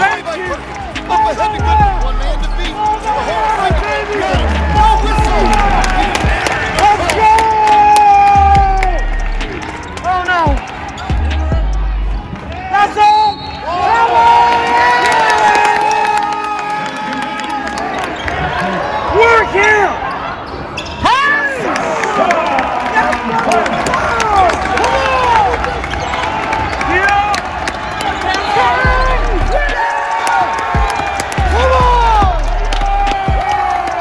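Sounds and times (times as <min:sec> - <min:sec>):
spectator shouting: 0:01.1 - 0:09.4, 0:28.2 - 0:34.0
sneakers squeaking on court: 0:20.4 - 0:21.1.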